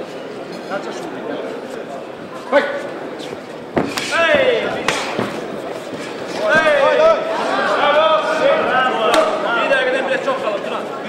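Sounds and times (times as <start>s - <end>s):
kicks and punches landing: 3.7s - 5.6s
crowd shouting: 3.8s - 10.0s.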